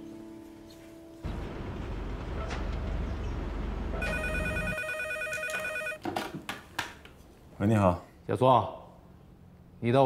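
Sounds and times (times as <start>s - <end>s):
desk telephone ringing: 4.0s - 6.0s.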